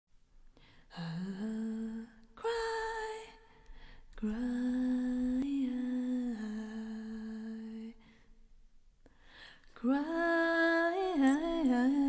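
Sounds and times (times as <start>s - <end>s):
woman humming: 11.0s - 12.0s.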